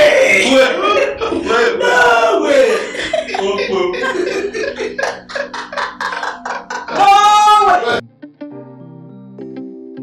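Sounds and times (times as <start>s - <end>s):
men laughing hard: 0.1s - 7.7s.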